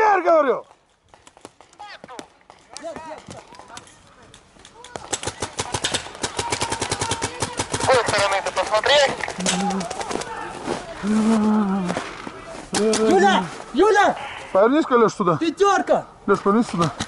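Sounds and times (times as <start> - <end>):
paintball markers firing: 3.7 - 10.3.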